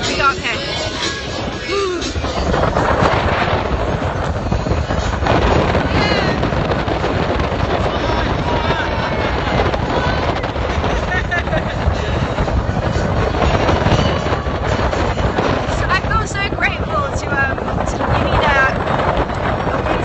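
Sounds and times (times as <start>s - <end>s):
wind buffeting microphone: 0.0s - 20.0s
indistinct voices: 5.0s - 18.9s.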